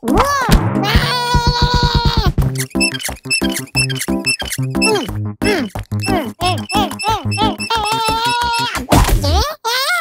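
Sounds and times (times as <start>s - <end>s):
bouncy cartoon music: 0.0s - 9.5s
squeaky whining tone: 2.5s - 8.8s.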